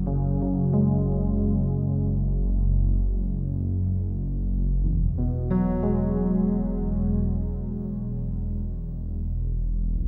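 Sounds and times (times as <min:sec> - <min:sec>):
low sustained background music: 0:00.0 - 0:10.0.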